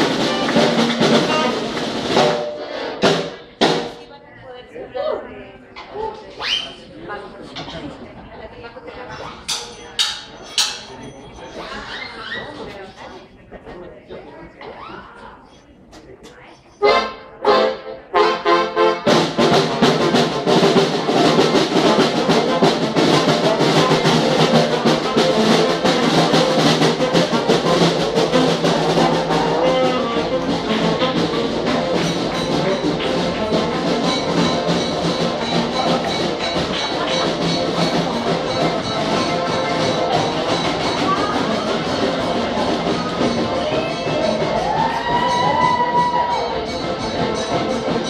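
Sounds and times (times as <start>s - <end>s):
live band playing: 0.0s - 4.1s, 16.8s - 48.0s.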